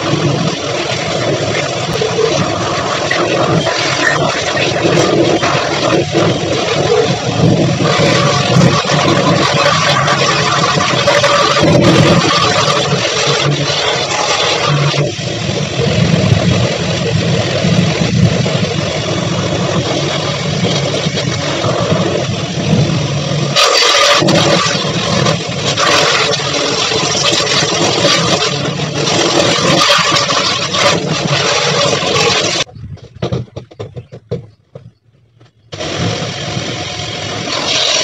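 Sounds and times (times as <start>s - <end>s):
pressure washer pump humming: 0.0s - 32.7s, 35.7s - 38.0s
water jet hissing on plastic: 0.0s - 32.7s, 35.7s - 38.0s.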